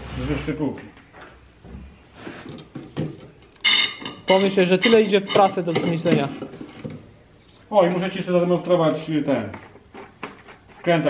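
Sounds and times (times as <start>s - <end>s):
pump plunger scraping: 3.6s - 6.9s.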